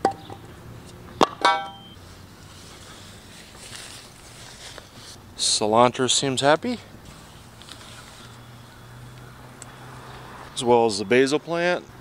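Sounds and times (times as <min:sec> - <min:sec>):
metal pole clanking: 0:01.2 - 0:01.9.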